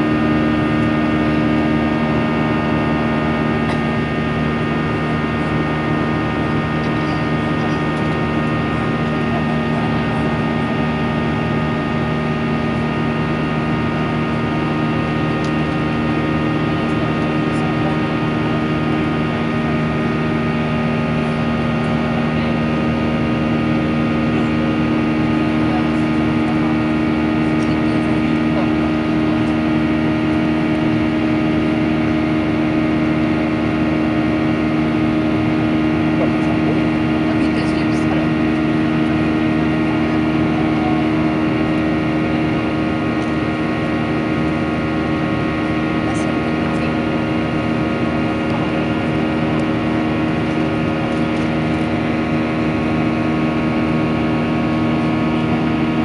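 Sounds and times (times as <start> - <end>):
jet engines droning: 0.0 - 56.0
steady hum tones: 0.0 - 56.0.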